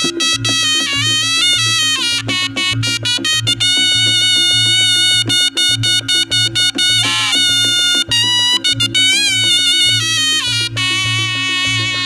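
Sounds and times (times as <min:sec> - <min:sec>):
low drum and gong beat: 0:00.0 - 0:12.0
reedy shawm melody: 0:00.0 - 0:12.0.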